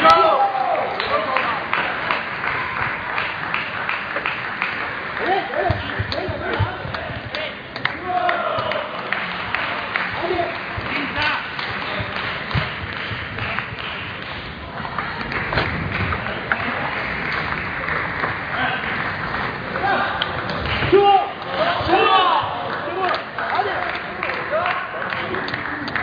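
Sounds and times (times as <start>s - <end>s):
table tennis balls clicking: 10.0s - 22.0s.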